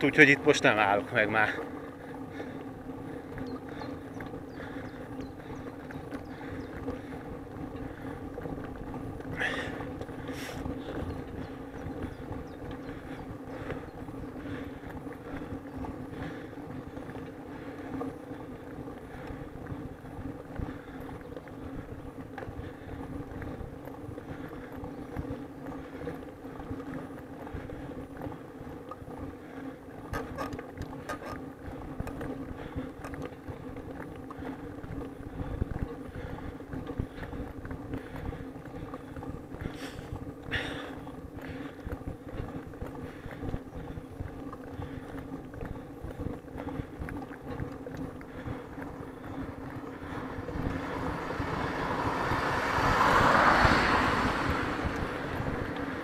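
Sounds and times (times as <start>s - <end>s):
vehicle engine running: 0.0s - 56.0s
wind and road noise: 0.0s - 56.0s.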